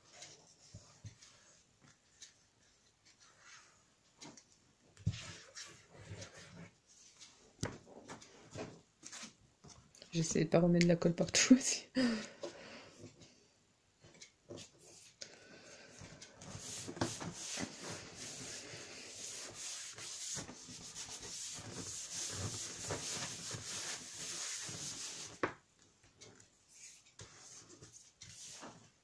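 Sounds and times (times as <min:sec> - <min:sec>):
palms rubbing over paper: 0:16.4 - 0:25.5.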